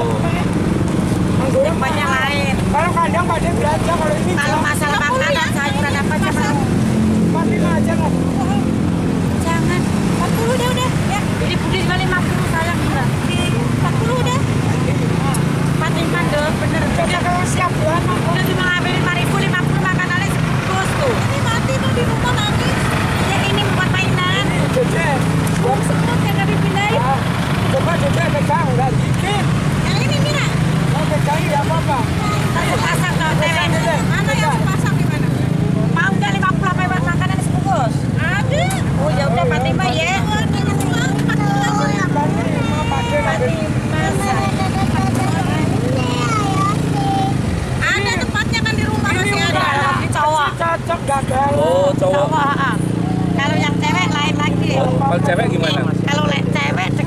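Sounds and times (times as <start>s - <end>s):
people chattering: 0.0s - 57.0s
street traffic rumble: 0.0s - 57.0s.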